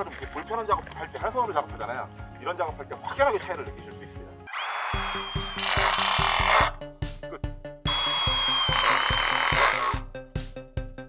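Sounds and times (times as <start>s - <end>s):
impact driver high whine: 4.5s - 6.8s, 7.9s - 10.0s
background music with beat: 5.0s - 11.0s.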